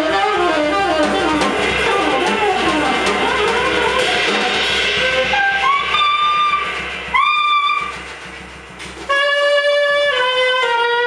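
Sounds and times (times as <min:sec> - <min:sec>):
tenor saxophone playing: 0:00.0 - 0:04.0, 0:09.1 - 0:11.0
drum kit: 0:00.0 - 0:11.0.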